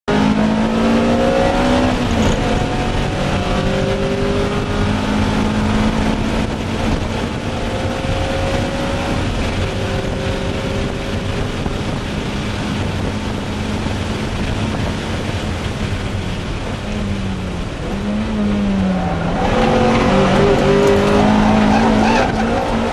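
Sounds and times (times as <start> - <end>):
car engine at full throttle: 0.1 - 22.9
wind and road noise: 0.1 - 22.9.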